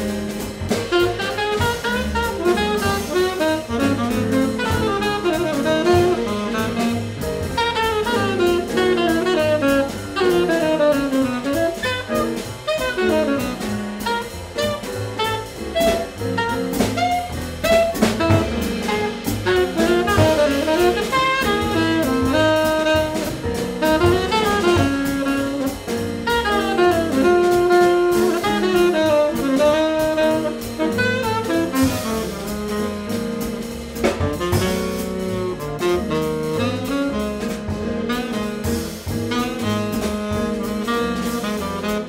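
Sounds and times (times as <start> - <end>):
drum kit: 0.0 - 42.0
piano: 0.0 - 42.0
upright double bass: 0.0 - 42.0
tenor saxophone melody: 0.9 - 42.0.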